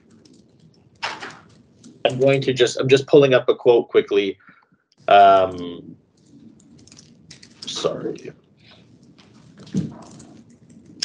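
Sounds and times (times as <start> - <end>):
faint keyboard typing: 0.0 - 2.4, 4.4 - 11.0.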